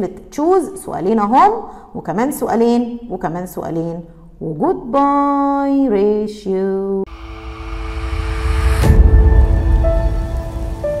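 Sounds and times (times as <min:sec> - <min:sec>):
deep rumble: 0:07.1 - 0:11.0
whoosh building to bright hit: 0:07.1 - 0:11.0.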